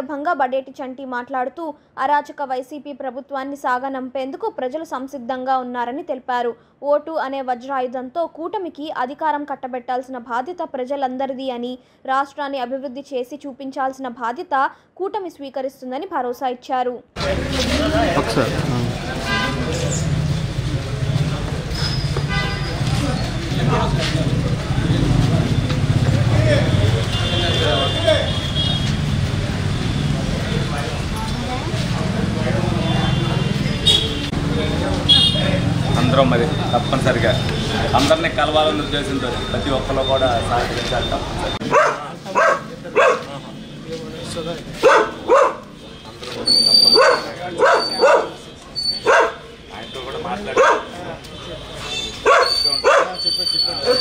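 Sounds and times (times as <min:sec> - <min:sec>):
people talking: 0:00.0 - 0:22.0, 0:22.6 - 0:28.6, 0:29.2 - 0:44.9, 0:49.6 - 0:54.0
road traffic rumble: 0:17.2 - 0:54.0
dog barking: 0:41.6 - 0:43.3, 0:44.8 - 0:45.7, 0:46.9 - 0:48.4, 0:49.0 - 0:49.5, 0:50.5 - 0:51.0, 0:52.2 - 0:53.2.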